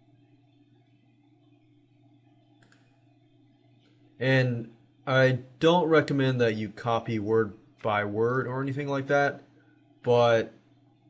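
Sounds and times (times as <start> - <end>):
faint room hum: 0.0 - 11.0
computer mouse click: 2.4 - 3.0.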